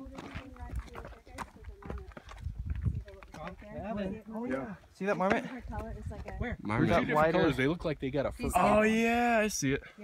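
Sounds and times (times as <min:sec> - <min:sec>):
footsteps on rocky dirt trail: 0:00.0 - 0:06.8.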